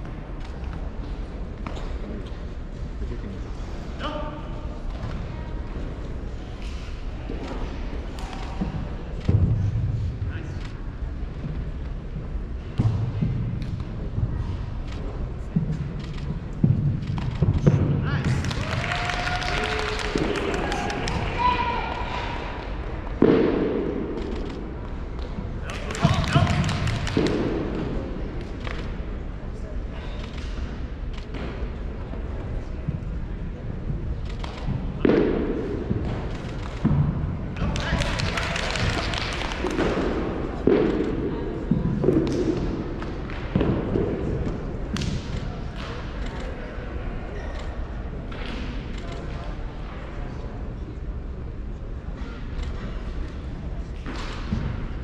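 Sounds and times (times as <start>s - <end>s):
murmur of voices: 0.0s - 55.0s.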